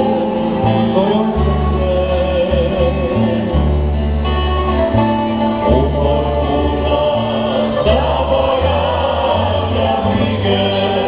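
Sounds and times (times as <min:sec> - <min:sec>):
male vocal harmony singing: 0:00.0 - 0:04.1, 0:05.4 - 0:11.0
acoustic guitars and mandolins: 0:00.0 - 0:11.0
double bass notes: 0:00.0 - 0:11.0.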